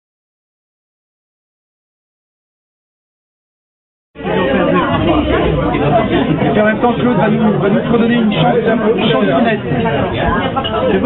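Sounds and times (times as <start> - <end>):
people talking: 4.2 - 11.0.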